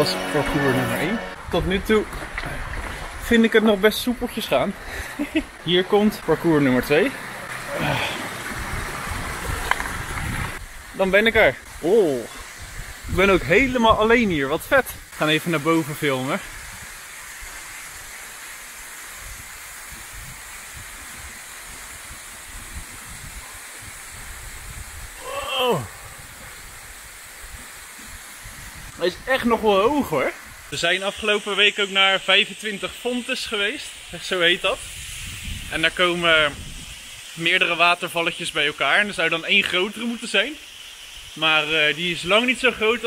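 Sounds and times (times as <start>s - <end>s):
stream and waterfall rushing: 0.0s - 43.0s
footsteps on loose rocks: 2.0s - 3.2s.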